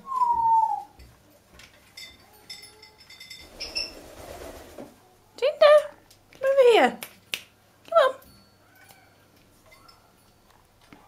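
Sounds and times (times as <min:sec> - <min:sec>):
faint clinks of hanging toy: 0:01.8 - 0:03.6, 0:08.2 - 0:10.7.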